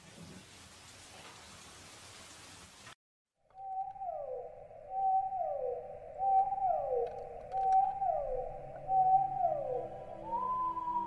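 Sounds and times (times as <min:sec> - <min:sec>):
mournful whale-song wail: 0:03.6 - 0:11.0.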